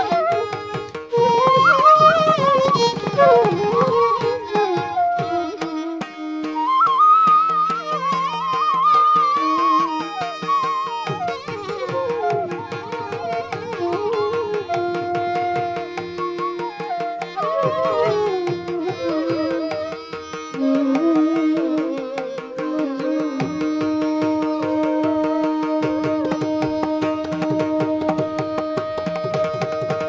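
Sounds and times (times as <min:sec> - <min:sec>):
bamboo flutes playing a melody: 0:00.0 - 0:30.0
tanpura drone: 0:00.0 - 0:30.0
fast hand-drum strokes: 0:09.3 - 0:20.0.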